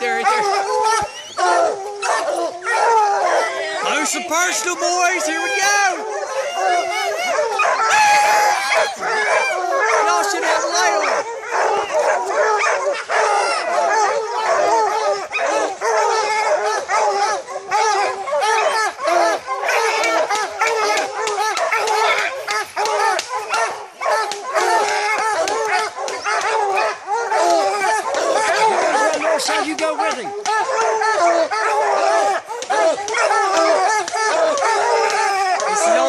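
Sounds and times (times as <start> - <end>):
hounds baying and barking: 0.0 - 36.0.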